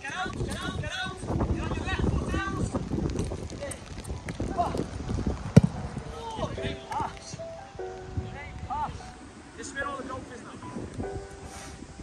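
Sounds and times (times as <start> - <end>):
sharp thud: 5.5 - 5.8.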